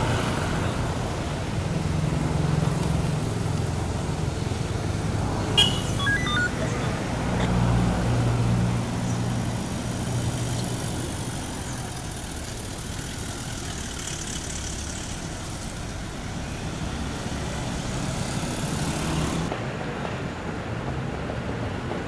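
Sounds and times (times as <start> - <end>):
traffic noise: 0.0 - 22.0.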